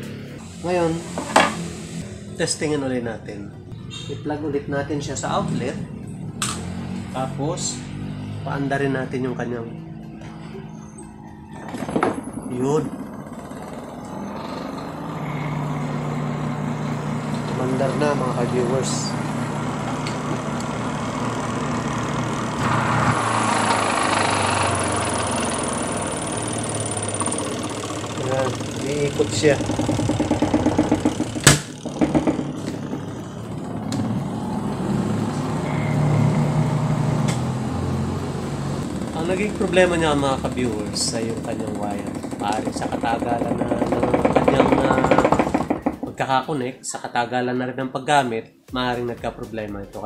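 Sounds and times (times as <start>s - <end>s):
spin dryer motor humming: 0.0s - 2.5s, 11.8s - 46.2s.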